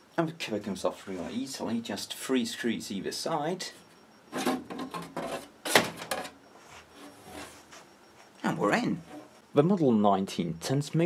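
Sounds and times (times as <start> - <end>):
metal cover scraping: 4.3 - 6.4, 8.9 - 9.4.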